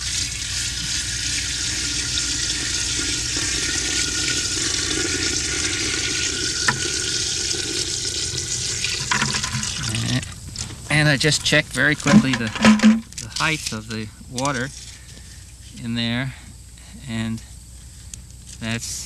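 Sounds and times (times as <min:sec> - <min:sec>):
water pouring from a bucket: 0:00.0 - 0:10.2.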